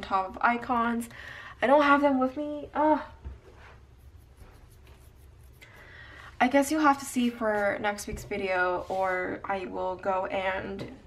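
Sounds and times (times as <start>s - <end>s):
hand brushing over paper pages: 3.4s - 5.8s.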